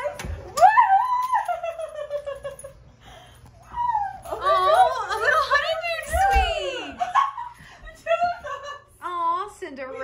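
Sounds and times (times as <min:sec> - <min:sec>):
woman squealing excitedly: 0:00.6 - 0:01.9, 0:03.6 - 0:05.2.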